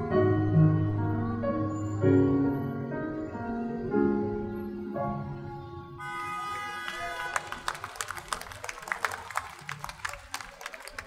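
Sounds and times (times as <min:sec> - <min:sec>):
audience clapping: 0:06.5 - 0:11.0.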